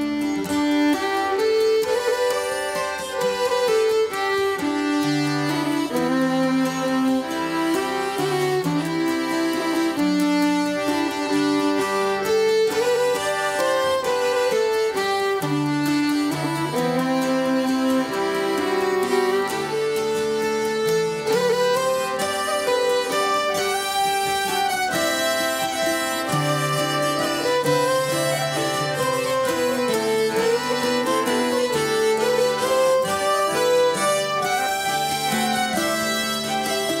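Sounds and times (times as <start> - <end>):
fiddle playing: 0.0 - 37.0
harmonica: 0.0 - 37.0
plucked-string backing: 0.0 - 37.0.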